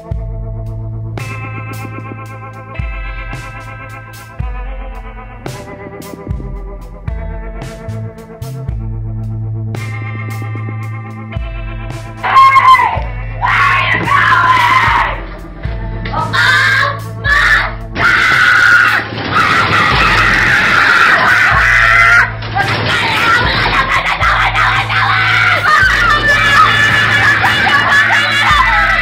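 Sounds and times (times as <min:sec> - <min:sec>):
loud high screaming: 0:12.2 - 0:15.2, 0:16.2 - 0:29.0.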